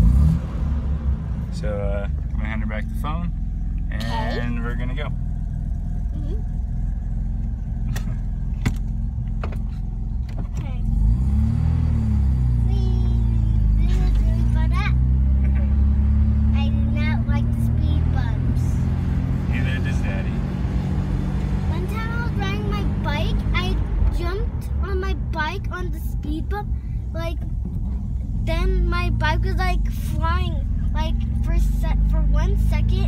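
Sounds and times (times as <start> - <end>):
rotary engine idling and revving: 0.0 - 33.0.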